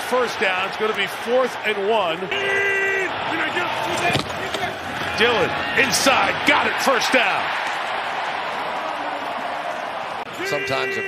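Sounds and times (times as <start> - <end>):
football game broadcast audio: 0.0 - 11.0.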